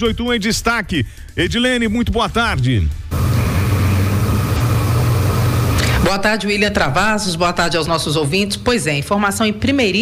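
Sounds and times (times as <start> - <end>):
broadcast line hiss and hum: 3.1 - 7.0
reporter speaking: 5.8 - 10.0.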